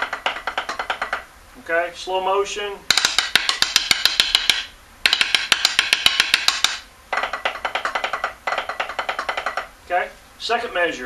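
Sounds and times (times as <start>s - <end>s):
snare drum rapid strokes: 0.0s - 1.3s, 2.9s - 9.7s.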